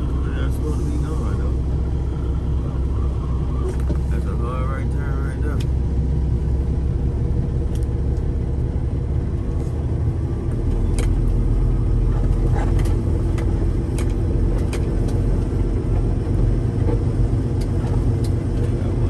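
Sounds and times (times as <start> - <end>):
diesel truck engine rumble: 0.0 - 19.0
clicks and rattles in cab: 12.1 - 19.0.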